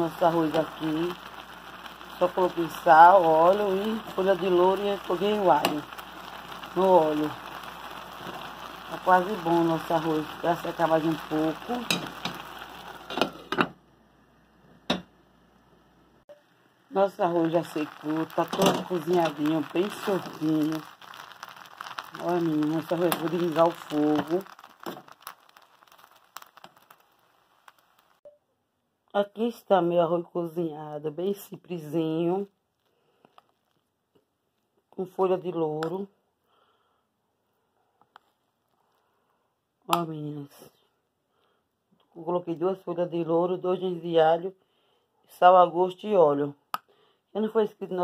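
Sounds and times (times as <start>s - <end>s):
rice sizzling in pot: 0.0s - 28.2s.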